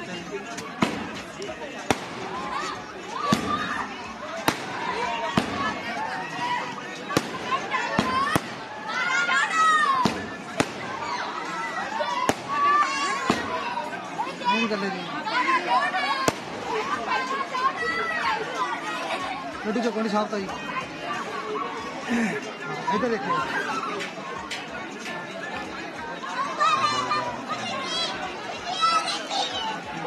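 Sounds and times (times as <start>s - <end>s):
voices talking: 0.0s - 30.0s
firecracker cracks: 0.8s - 1.2s, 1.9s - 2.3s, 3.3s - 3.7s, 4.4s - 5.7s, 7.1s - 8.6s, 10.0s - 11.0s, 12.3s - 12.6s, 13.3s - 13.6s, 16.3s - 16.6s.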